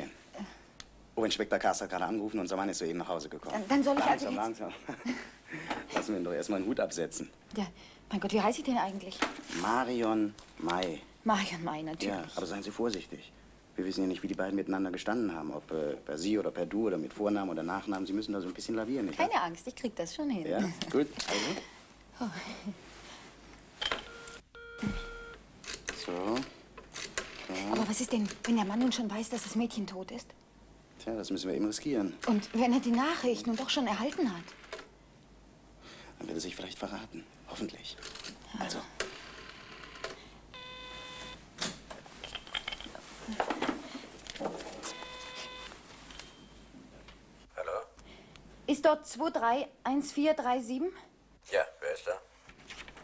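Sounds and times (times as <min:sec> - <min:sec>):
telephone dial tone: 0:23.9 - 0:25.4, 0:39.4 - 0:41.4, 0:44.8 - 0:45.7.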